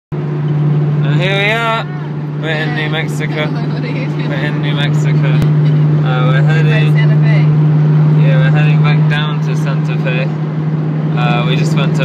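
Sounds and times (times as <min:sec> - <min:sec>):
car cabin highway drone: 0:00.1 - 0:12.0
woman's voice: 0:01.8 - 0:04.6, 0:05.6 - 0:07.6.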